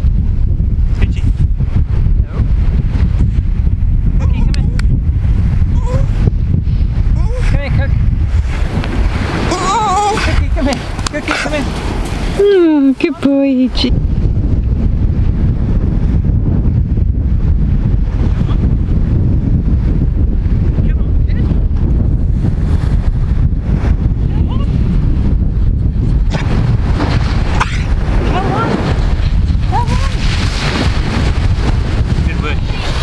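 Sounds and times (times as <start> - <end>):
wind buffeting microphone: 0.0 - 33.0
sea surf washing in: 5.1 - 14.3, 26.4 - 33.0.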